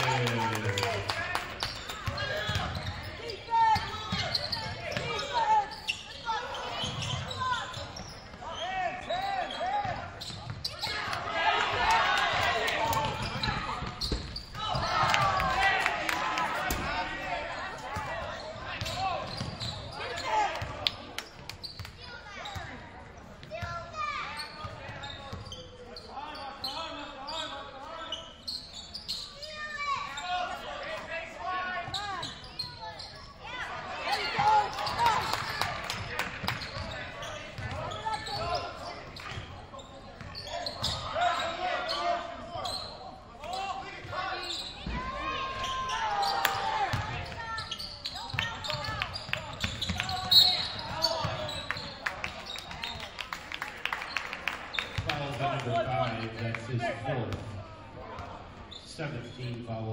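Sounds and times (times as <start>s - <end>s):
voices and shouts: 0.0s - 21.1s, 29.2s - 58.7s
referee whistle: 49.6s - 51.9s.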